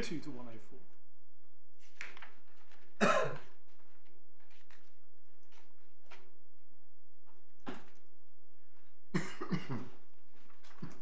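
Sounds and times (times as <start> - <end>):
person coughing: 3.0 - 3.4, 9.2 - 9.9.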